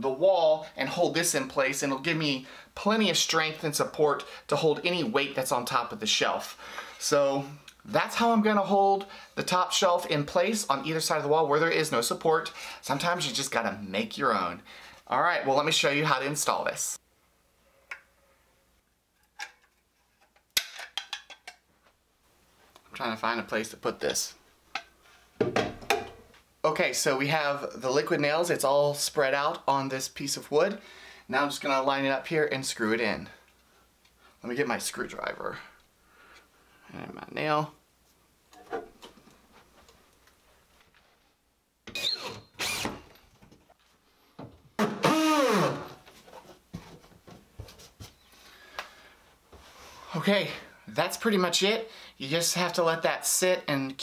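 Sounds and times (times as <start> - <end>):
cordless drill driving screws: 41.9 - 43.1, 44.8 - 46.0.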